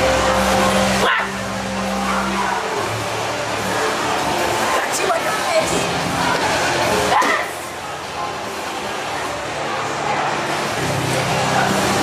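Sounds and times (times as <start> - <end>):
low drone tone: 0.0 - 4.7.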